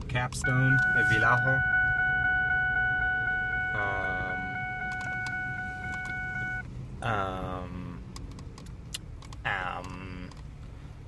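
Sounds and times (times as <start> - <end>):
car engine idling: 0.1 - 11.0
car warning chime: 0.4 - 6.6.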